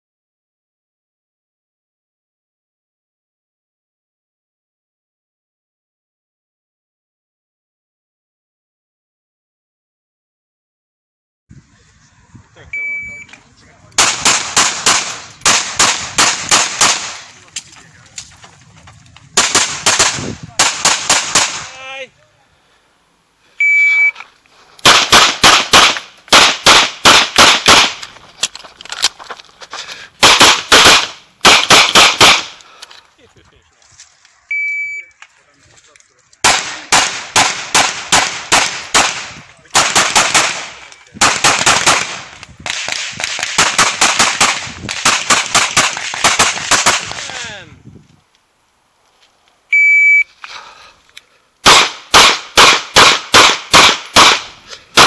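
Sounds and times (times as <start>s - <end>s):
shot timer beep: 12.7s - 13.3s, 23.6s - 24.2s, 34.5s - 35.1s, 49.8s - 50.3s
rapid pistol shots: 14.0s - 17.3s, 19.4s - 21.7s, 24.8s - 28.0s, 30.2s - 32.6s, 36.4s - 47.4s, 51.6s - 55.0s.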